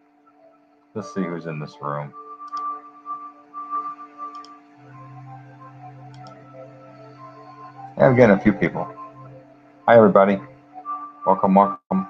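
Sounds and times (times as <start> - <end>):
soft music of held tones: 0.0 - 12.0.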